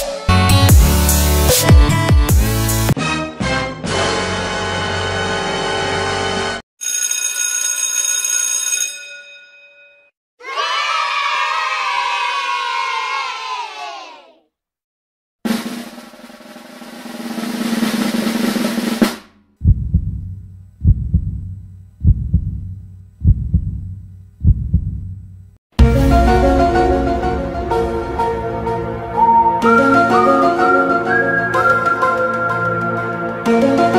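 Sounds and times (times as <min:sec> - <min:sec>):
heavy drum hits: 0:15.5 - 0:21.5, 0:25.8 - 0:29.2
drum roll: 0:15.5 - 0:23.8, 0:25.8 - 0:29.8
pitched sound bending downward: 0:25.8 - 0:31.1
sustained chord: 0:25.8 - 0:31.1.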